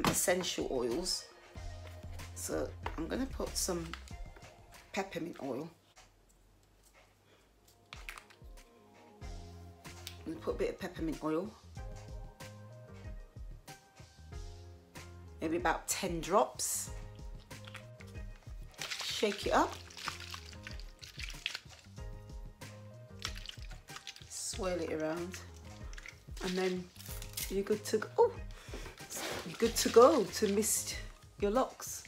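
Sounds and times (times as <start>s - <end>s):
soft background music: 0.0s - 32.0s
small bottle clicking and tapping: 7.9s - 8.5s, 17.4s - 18.1s, 23.2s - 24.3s, 25.6s - 27.5s
water sloshing in spray bottle: 17.0s - 22.0s, 23.1s - 31.8s.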